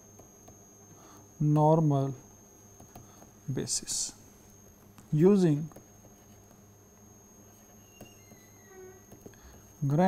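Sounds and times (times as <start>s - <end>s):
high-pitched electronic whine: 7.0s - 10.0s
faint pitched tone: 7.2s - 9.2s.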